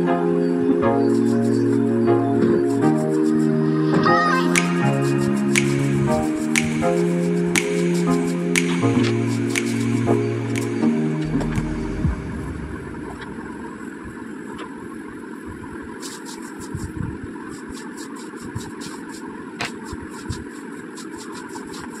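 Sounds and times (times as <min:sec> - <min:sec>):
low background rumble: 0:10.0 - 0:14.5
pencil shading on paper: 0:16.0 - 0:22.0.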